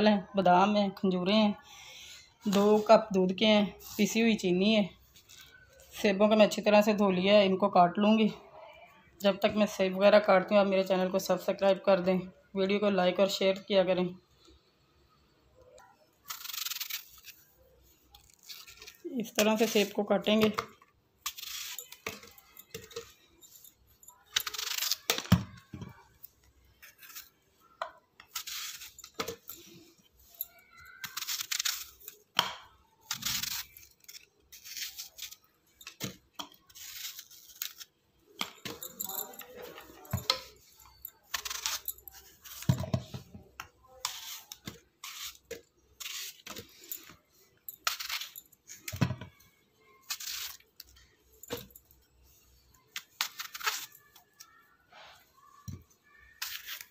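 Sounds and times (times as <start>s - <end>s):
knife slicing apples: 44.0s - 46.7s.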